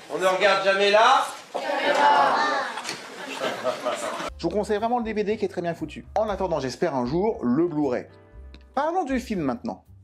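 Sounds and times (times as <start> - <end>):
children chattering: 1.5 - 3.4.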